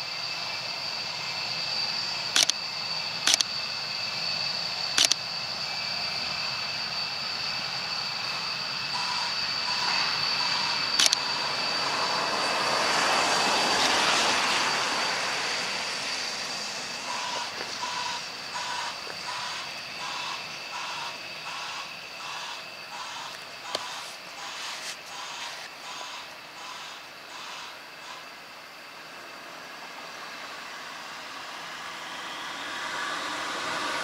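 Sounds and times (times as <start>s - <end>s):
jet engines running: 0.0s - 34.0s
sharp click: 2.4s - 2.6s, 5.0s - 5.2s, 11.0s - 11.2s
pulsing electronic beep: 15.6s - 23.2s.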